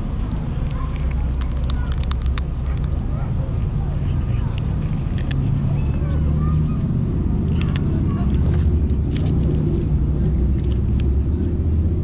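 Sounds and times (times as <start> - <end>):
cats crunching dry kibble: 0.0 - 6.2, 7.4 - 12.0.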